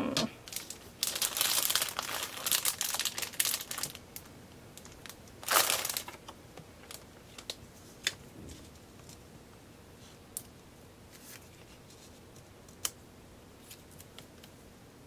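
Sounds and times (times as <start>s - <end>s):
paper rustling and crinkling: 0.5s - 4.0s, 4.8s - 6.2s, 11.1s - 12.5s.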